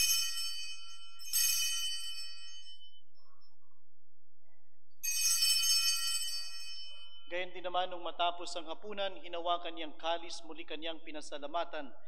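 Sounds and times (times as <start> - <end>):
small bells ringing: 0.0 - 3.4, 5.0 - 7.4.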